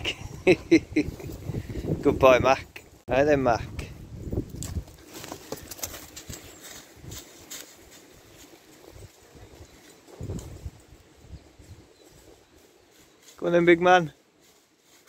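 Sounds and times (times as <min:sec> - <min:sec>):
footsteps on leaves: 0:04.6 - 0:10.7, 0:11.6 - 0:15.0.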